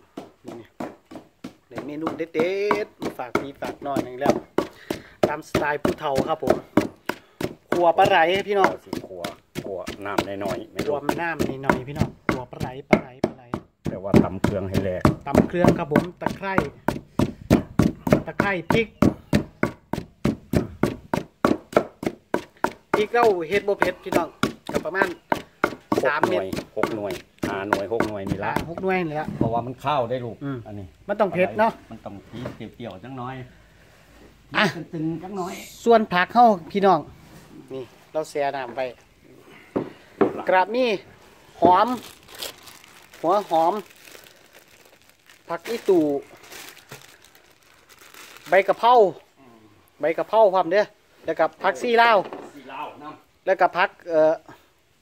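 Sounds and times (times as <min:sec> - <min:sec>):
pestle pounding in mortar: 0:00.0 - 0:29.7
hands rustling greens in water: 0:41.8 - 0:48.8.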